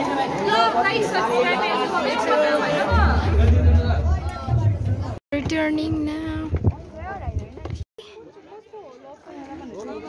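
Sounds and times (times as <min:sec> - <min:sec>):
students chattering: 0:00.0 - 0:05.2
low rumble: 0:02.9 - 0:05.2.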